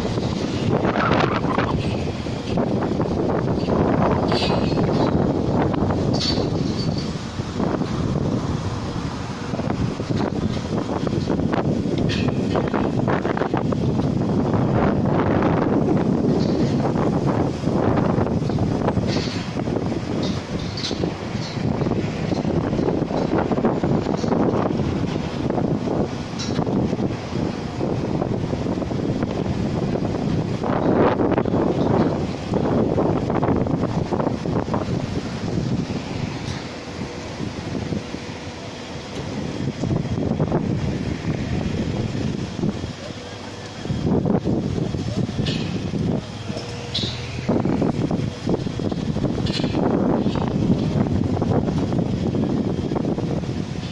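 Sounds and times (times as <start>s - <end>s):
gusty wind buffeting microphone: 0.0s - 53.9s.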